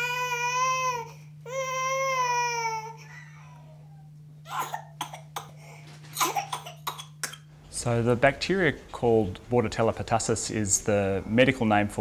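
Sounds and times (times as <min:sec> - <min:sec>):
infant crying high-pitched: 0:00.0 - 0:03.1
infant coughing: 0:04.4 - 0:07.5.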